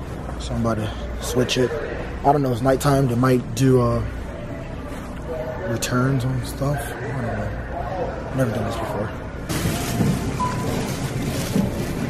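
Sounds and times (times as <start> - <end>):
plastic bag rustling: 9.5 - 12.0.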